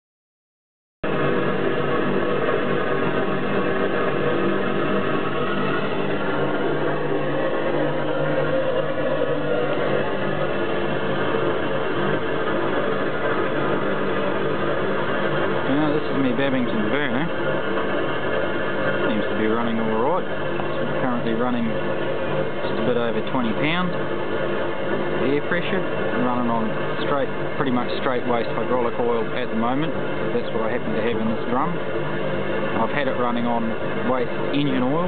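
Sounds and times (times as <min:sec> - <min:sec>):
oil burner roaring: 0:01.0 - 0:35.0.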